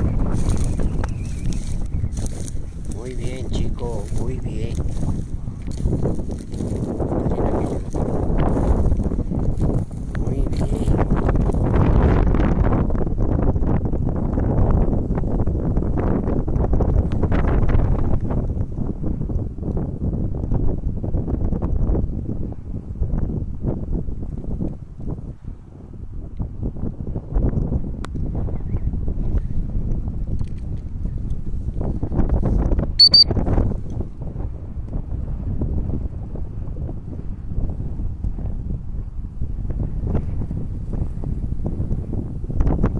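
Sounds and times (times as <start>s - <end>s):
footsteps crunching dry stubble: 0.0s - 11.8s
wind buffeting microphone: 0.0s - 42.9s.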